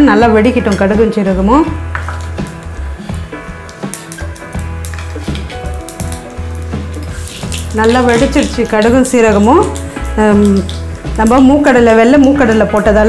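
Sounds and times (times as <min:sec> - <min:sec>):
background music with bass: 0:00.0 - 0:13.0
seeds sizzling and popping in oil: 0:01.6 - 0:13.0
sharp crackles: 0:02.0 - 0:11.7.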